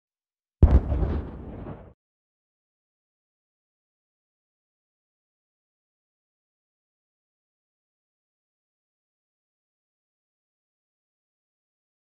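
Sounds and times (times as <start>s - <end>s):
deep boom with rumbling decay: 0.6s - 2.0s.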